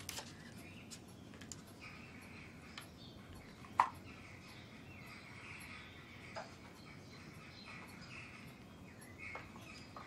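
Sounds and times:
faint chirping: 0.0s - 10.0s.

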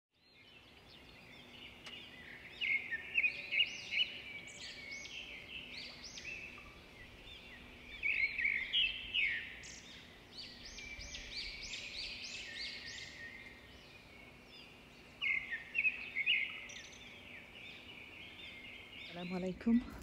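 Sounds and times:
songbirds chirping: 0.1s - 20.0s.

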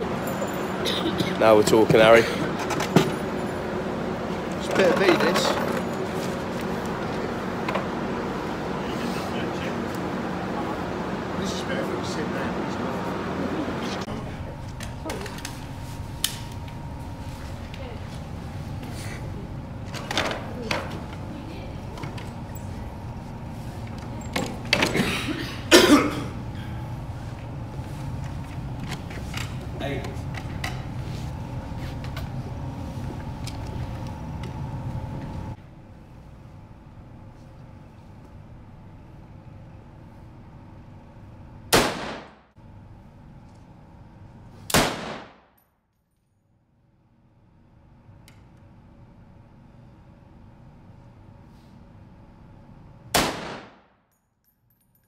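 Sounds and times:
steady low hum: 0.0s - 45.6s, 46.4s - 55.0s
person coughing: 0.8s - 1.4s, 24.9s - 26.4s
rifle shots with echo: 41.8s - 42.4s, 44.7s - 45.4s, 53.2s - 53.8s.

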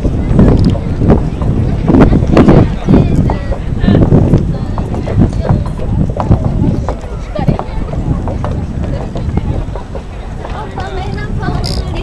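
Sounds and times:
bystanders talking: 0.0s - 12.0s
knocking footsteps: 0.0s - 12.0s.

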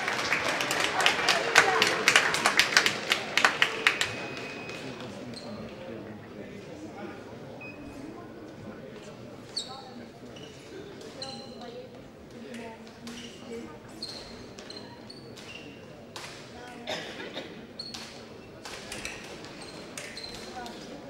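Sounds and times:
murmur of voices: 0.0s - 21.0s
shoes squeaking: 19.3s - 21.0s.

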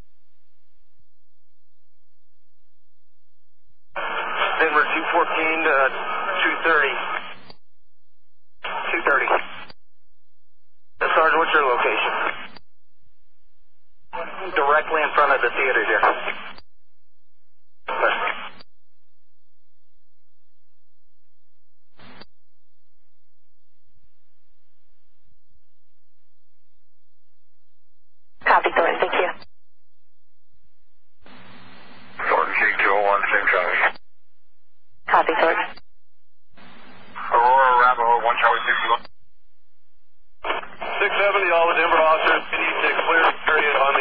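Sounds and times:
radio voice transmission: 4.0s - 7.5s, 8.6s - 9.7s, 11.0s - 12.6s, 14.1s - 16.6s, 17.9s - 18.6s, 28.4s - 29.4s, 32.2s - 34.0s, 35.0s - 35.8s, 37.1s - 39.1s, 40.4s - 44.0s
radio squelch burst: 4.0s - 7.6s, 8.6s - 9.7s, 11.0s - 12.6s, 17.9s - 18.6s, 31.2s - 34.0s, 35.1s - 35.8s, 36.6s - 39.1s, 40.4s - 44.0s
voice over hissy police radio: 37.2s - 39.0s.

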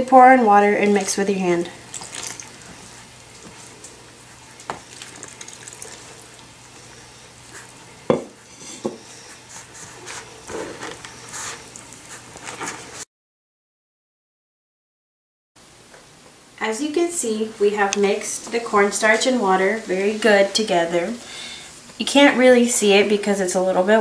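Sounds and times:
hand squishing wet cornstarch: 1.8s - 6.8s
scratchy rustling: 9.2s - 13.0s.

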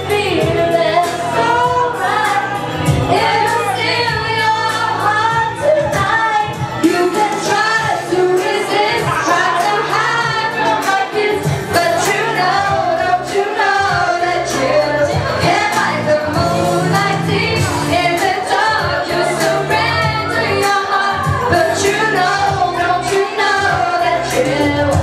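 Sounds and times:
pop accompaniment with bass and beat: 0.0s - 25.0s
woman singing into microphone: 0.0s - 25.0s.

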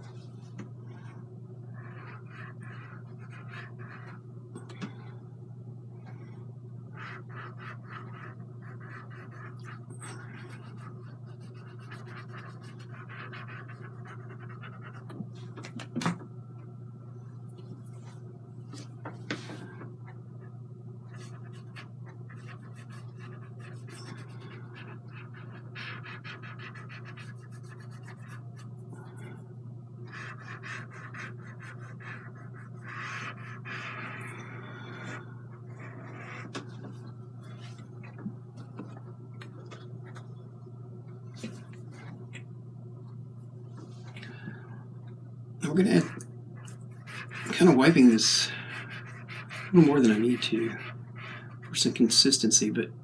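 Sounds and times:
steady low hum: 0.0s - 53.0s
cotton swab scratching on canvas: 21.1s - 28.7s.

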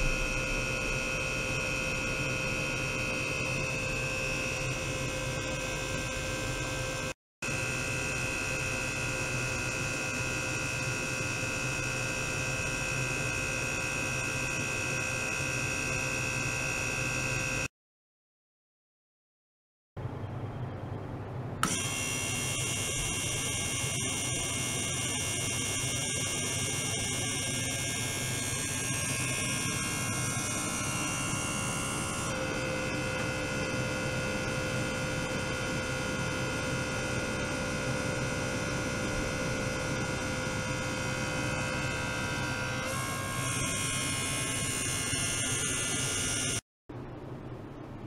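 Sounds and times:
low hum: 0.0s - 4.4s
ultrasonic transducer whine: 0.0s - 17.7s, 20.0s - 48.0s.

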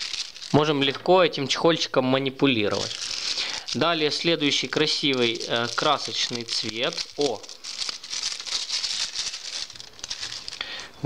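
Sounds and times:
plastic bag crinkling: 0.0s - 1.6s, 2.6s - 11.0s.

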